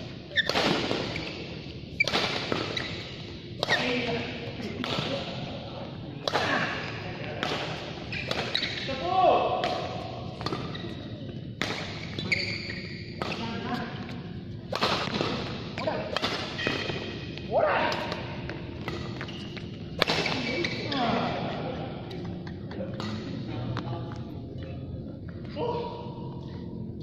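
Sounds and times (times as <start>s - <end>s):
shoes squeaking on court: 0.2s - 4.0s, 8.0s - 9.0s, 10.4s - 14.2s, 16.5s - 17.4s, 18.8s - 21.2s
rackets striking shuttlecock: 2.0s - 3.0s, 14.7s - 20.5s.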